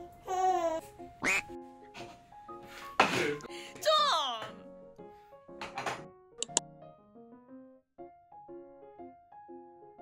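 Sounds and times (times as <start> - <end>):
light background music: 0.0 - 10.0
comic quack sound: 1.2 - 1.6.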